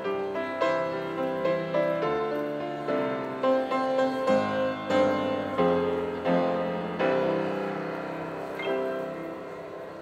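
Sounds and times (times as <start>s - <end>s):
grand piano playing: 0.0s - 10.0s.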